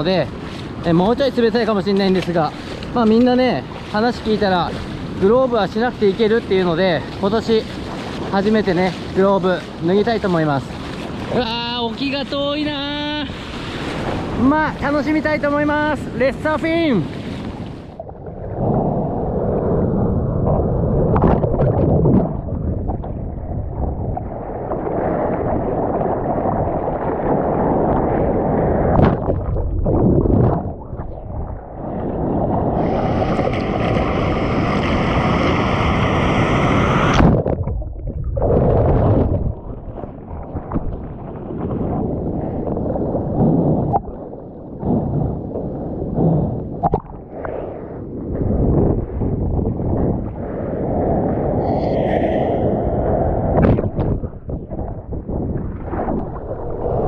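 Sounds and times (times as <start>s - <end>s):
muffled seawater rushing and sloshing: 0.0s - 57.0s.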